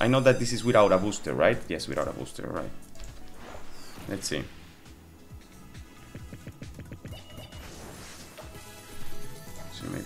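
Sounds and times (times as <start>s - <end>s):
slot game music: 0.0s - 10.0s.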